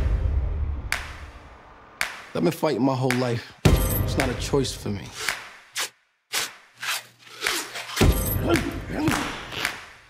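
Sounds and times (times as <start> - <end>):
cloth hand wraps swishing: 5.2 - 8.6.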